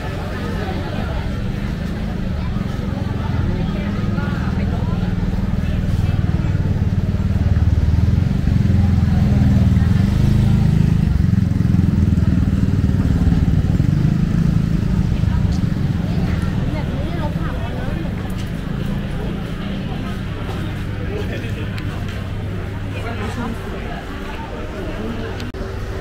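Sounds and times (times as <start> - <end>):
motorcycle engines running: 0.0 - 26.0
people chatting: 0.0 - 26.0.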